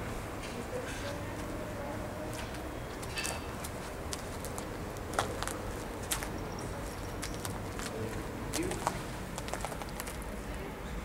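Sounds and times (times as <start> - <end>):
footsteps cracking dry twigs: 3.0 - 10.3.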